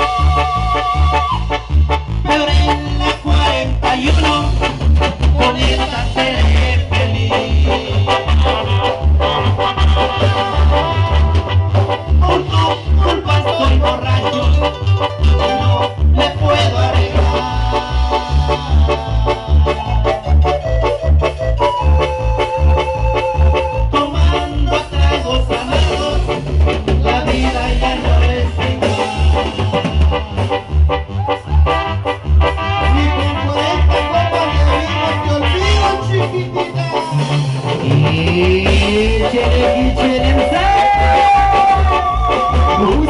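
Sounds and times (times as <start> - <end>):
heavy bass beat: 0.0 - 43.0
live latin dance band: 0.0 - 43.0.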